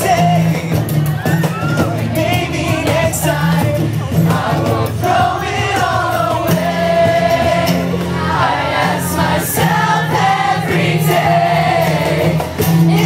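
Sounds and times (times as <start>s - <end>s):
cajon beat: 0.0s - 13.0s
strummed acoustic guitar: 0.0s - 13.0s
voices singing together: 0.0s - 13.0s.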